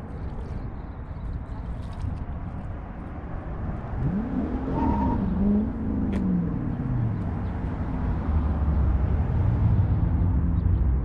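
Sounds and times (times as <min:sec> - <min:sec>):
wind rumbling on microphone: 0:00.0 - 0:11.0
engine passing by: 0:03.8 - 0:10.6.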